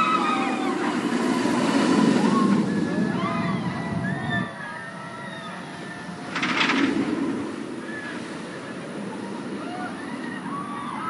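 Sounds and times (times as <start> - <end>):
roller coaster train rumbling: 0.0 - 11.0.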